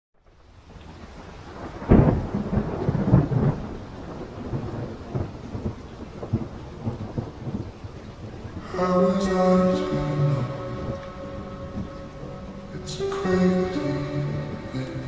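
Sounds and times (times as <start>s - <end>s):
rain: 0.2s - 15.0s
thunder rumble: 0.6s - 15.0s
thunderclap: 1.1s - 15.0s.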